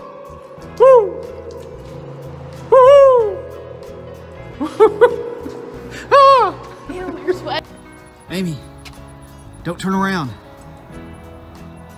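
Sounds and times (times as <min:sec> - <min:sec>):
droning background music: 0:00.0 - 0:11.9
man wailing ghostly woooo: 0:00.6 - 0:01.4, 0:02.7 - 0:03.6.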